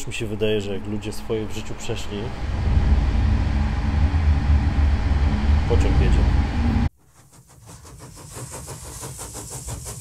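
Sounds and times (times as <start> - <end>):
machine rumble with fast rattle: 2.2 - 6.9.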